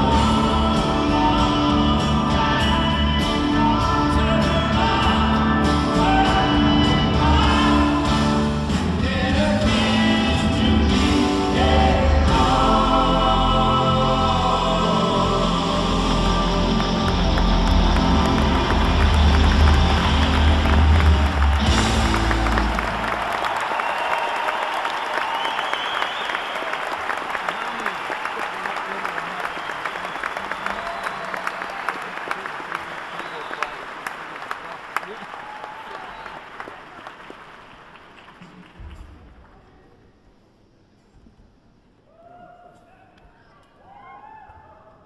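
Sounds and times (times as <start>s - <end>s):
live band closing chord: 0.0s - 23.6s
audience applauding: 15.8s - 39.2s.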